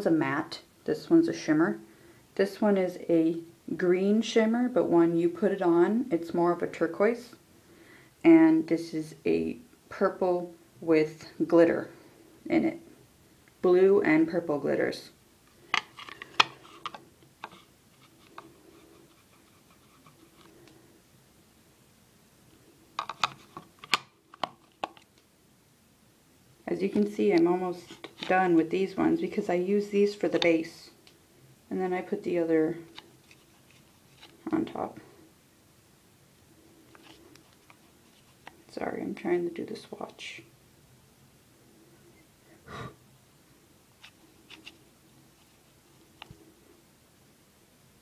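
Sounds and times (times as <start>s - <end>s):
fingertip rubbing eyeshadow: 17.5s - 20.4s.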